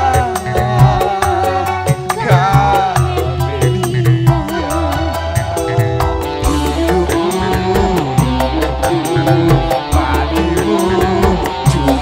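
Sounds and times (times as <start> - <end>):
bass: 0.0 - 12.0
man singing into a microphone: 0.0 - 12.0
steady drum beat: 0.0 - 12.0.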